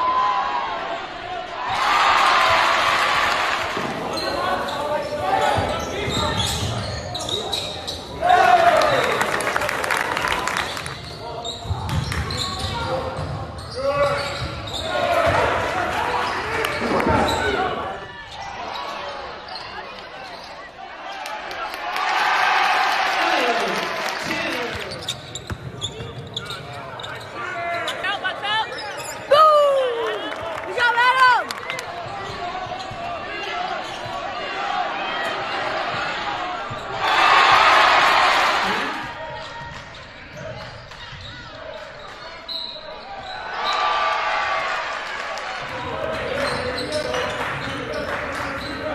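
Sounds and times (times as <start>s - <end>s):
sneaker squeak: 3.8s - 8.2s, 10.7s - 15.5s, 16.2s - 21.2s, 24.7s - 29.3s, 32.0s - 34.3s, 39.1s - 43.8s, 46.3s - 48.9s.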